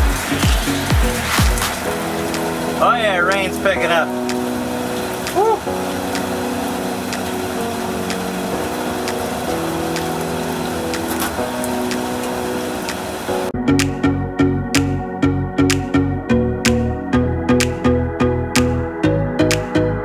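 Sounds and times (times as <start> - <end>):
music with a steady beat: 0.0 - 6.4, 12.9 - 20.0
rain hissing: 0.0 - 13.5
soft music of held chords: 0.0 - 20.0.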